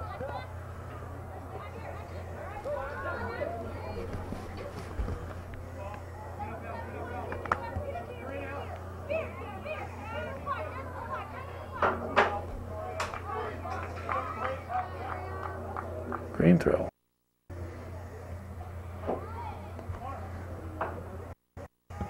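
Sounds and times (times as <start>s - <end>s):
steady low hum: 0.0s - 14.0s
girls calling and chattering: 0.0s - 16.0s.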